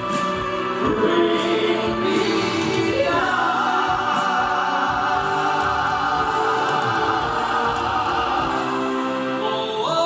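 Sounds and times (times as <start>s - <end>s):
male singers in harmony: 0.0s - 10.0s.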